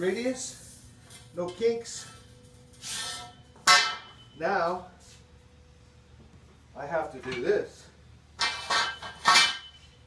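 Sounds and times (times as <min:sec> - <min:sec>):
metal conduit clanking on concrete: 0:01.4 - 0:04.4, 0:08.4 - 0:10.0.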